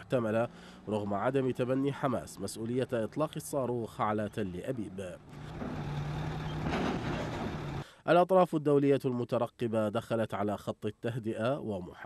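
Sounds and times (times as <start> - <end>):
heavy vehicle engine running: 5.2 - 7.9.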